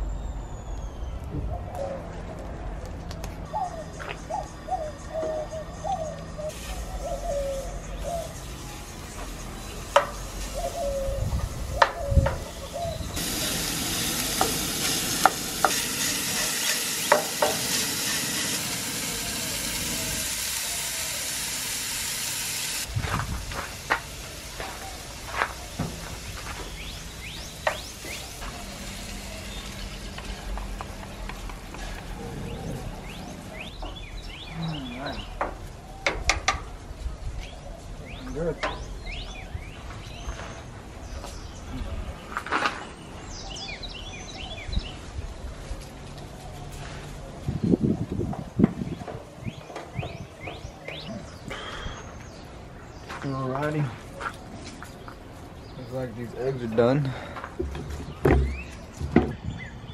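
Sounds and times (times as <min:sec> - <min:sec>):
sausage sizzling in frying pan: 0:12.5 - 0:31.7.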